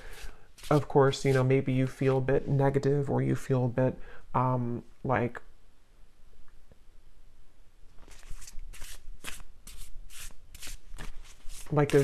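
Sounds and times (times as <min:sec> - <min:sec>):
cards being shuffled: 0:00.1 - 0:01.4, 0:08.0 - 0:12.0.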